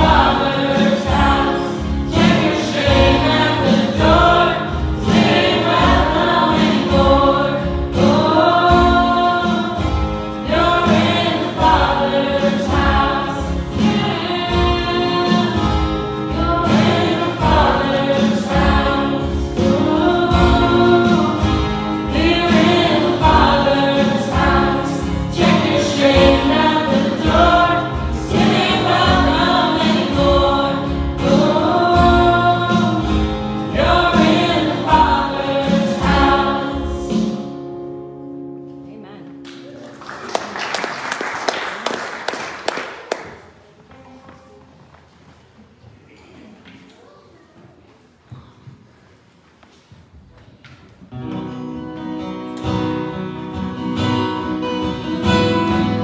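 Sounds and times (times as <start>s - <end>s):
group of voices singing: 0.0s - 37.6s
acoustic guitars: 0.0s - 56.0s.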